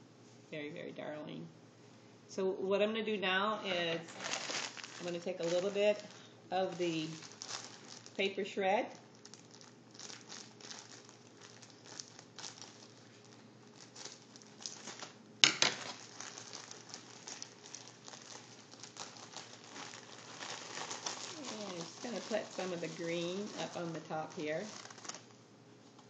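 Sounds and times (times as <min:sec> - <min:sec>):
shredded paper rustling: 0:04.0 - 0:08.4, 0:09.2 - 0:25.3.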